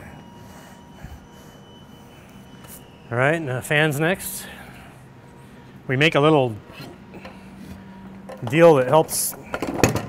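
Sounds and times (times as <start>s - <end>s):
faint steady tones: 0.0s - 9.8s
low steady hum: 0.0s - 10.0s.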